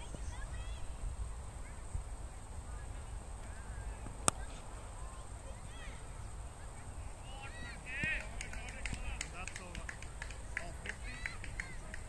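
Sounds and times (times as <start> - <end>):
people clapping: 7.9 - 12.0.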